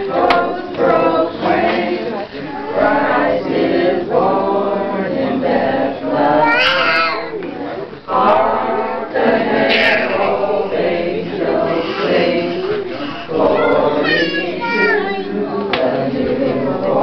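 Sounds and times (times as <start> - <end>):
group of people singing: 0.0 - 17.0.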